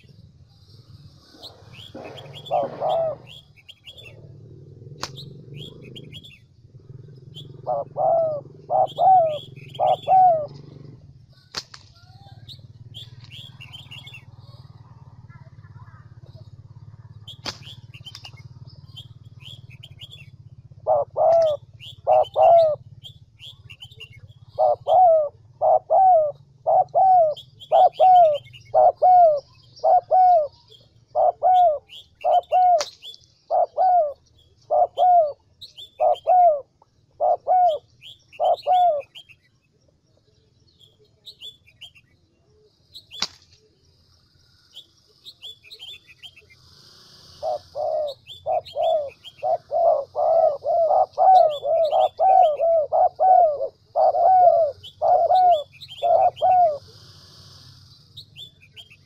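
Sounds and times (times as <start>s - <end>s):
dove cooing: 0.0s - 39.4s, 44.8s - 57.8s
small birds chirping: 0.0s - 59.0s
sharp clicks: 5.0s - 5.2s.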